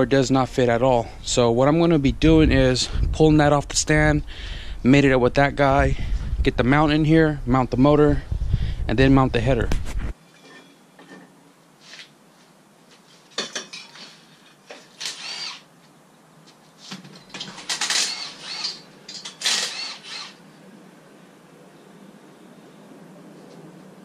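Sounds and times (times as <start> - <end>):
power tool running in bursts: 15.0 - 15.6, 17.8 - 18.8, 19.4 - 20.4.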